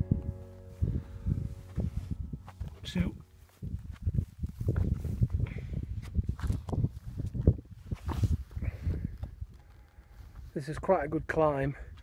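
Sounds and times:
rustle and bumps: 0:00.3 - 0:09.9.

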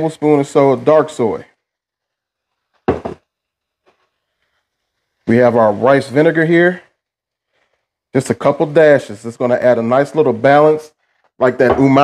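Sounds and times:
bottle knocking on countertop: 0:02.9 - 0:03.2, 0:11.6 - 0:11.9.

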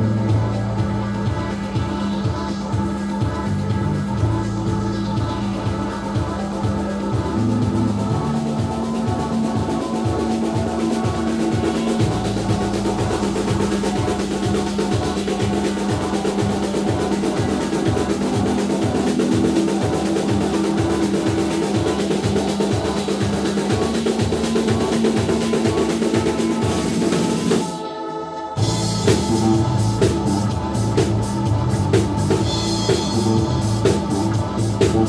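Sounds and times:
electric bass: 0:00.0 - 0:27.3, 0:28.6 - 0:35.0
drum kit steady pulse: 0:00.0 - 0:27.9, 0:28.5 - 0:35.0.

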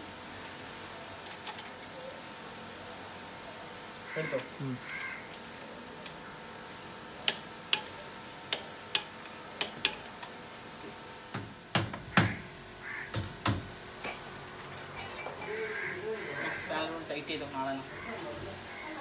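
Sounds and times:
sharp metallic clicks of hand tool: 0:07.2 - 0:07.9, 0:08.5 - 0:10.2.

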